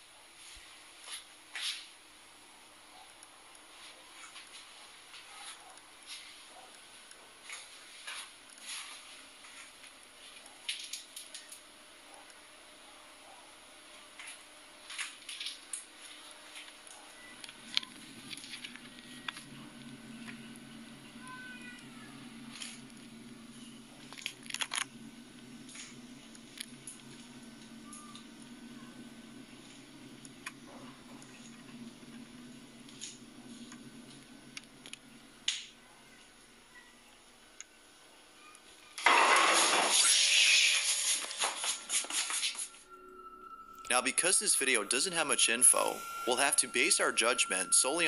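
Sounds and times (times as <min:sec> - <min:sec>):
low hum: 0:08.9 - 0:38.6, 0:42.2 - 0:48.0.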